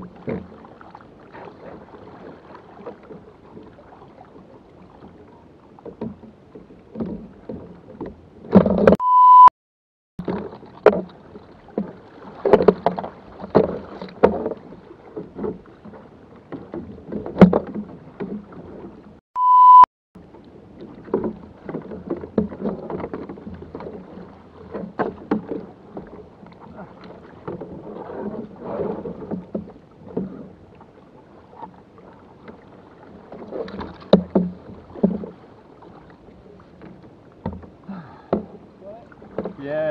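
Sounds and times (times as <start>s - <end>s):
water lapping at hull: 0.0s - 9.0s, 10.2s - 19.2s, 20.2s - 39.9s
censor beep tones: 8.9s - 9.5s, 19.4s - 19.9s.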